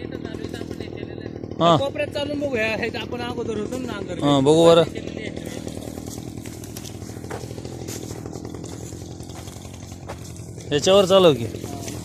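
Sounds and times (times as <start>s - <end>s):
brush cutter engine running: 0.0s - 12.0s.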